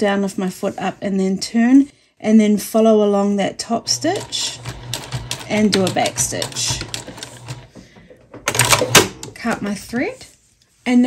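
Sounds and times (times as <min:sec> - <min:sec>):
sewing machine running: 0:03.8 - 0:07.8, 0:08.5 - 0:09.3.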